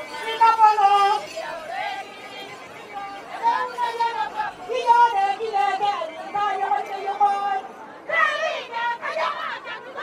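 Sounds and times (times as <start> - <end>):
crowd chatter: 0.0 - 10.0
women singing in a group: 0.0 - 10.0.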